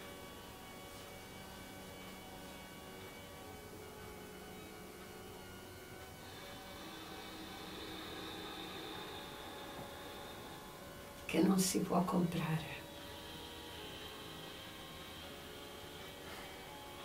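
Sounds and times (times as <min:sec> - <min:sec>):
faint hum of held tones: 0:00.0 - 0:17.0.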